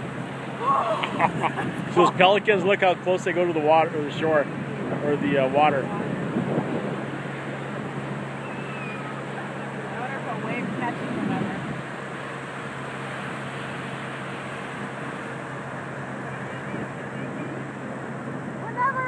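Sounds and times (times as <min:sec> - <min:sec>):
ocean surf breaking: 0:00.0 - 0:19.0
distant voices calling: 0:06.9 - 0:19.0.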